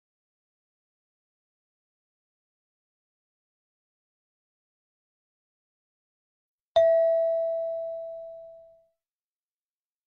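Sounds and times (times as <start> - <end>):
bell-like chime ringing: 6.8 - 8.8.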